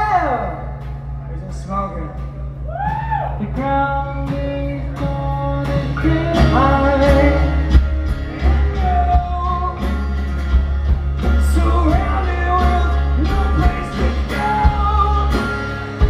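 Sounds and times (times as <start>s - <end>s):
live rock band playing: 0.0s - 16.0s
man singing: 3.4s - 10.2s, 11.2s - 16.0s.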